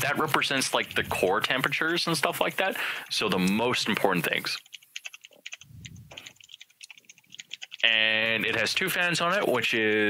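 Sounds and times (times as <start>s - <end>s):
person speaking: 0.0s - 10.0s
computer keyboard typing: 3.0s - 9.2s.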